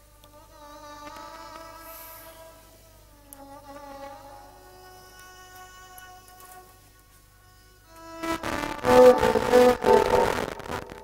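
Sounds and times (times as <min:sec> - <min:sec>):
soft droning background music: 0:00.0 - 0:11.0.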